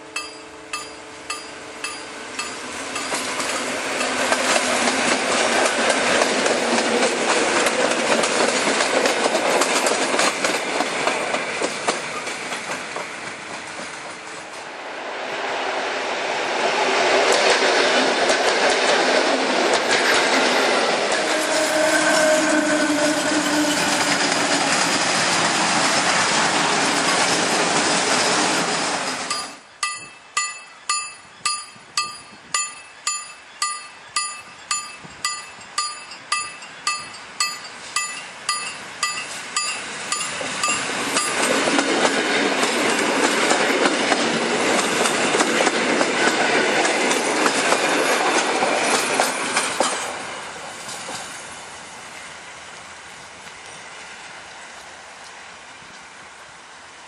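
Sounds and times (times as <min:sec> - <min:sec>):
level-crossing warning bell: 0:00.0 - 0:05.2, 0:29.1 - 0:41.9
trains passing at speed: 0:00.0 - 0:57.0
wheels knocking over rail joints: 0:00.2 - 0:13.1, 0:28.9 - 0:50.1.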